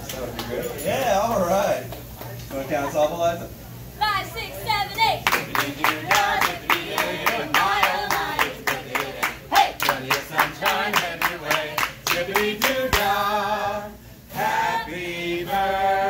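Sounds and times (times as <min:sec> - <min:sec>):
people clapping in time: 0:01.3 - 0:02.4, 0:05.2 - 0:13.2
group singing a chant: 0:05.4 - 0:16.0.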